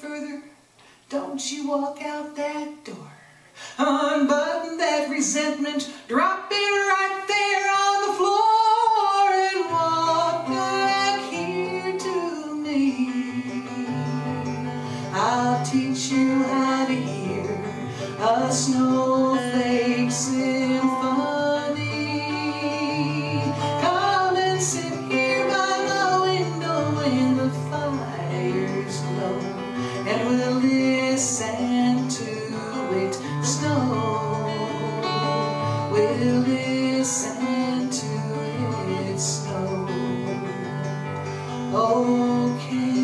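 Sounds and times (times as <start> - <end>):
woman singing: 0.0 - 40.7, 41.5 - 43.0
acoustic guitar strumming: 3.6 - 43.0.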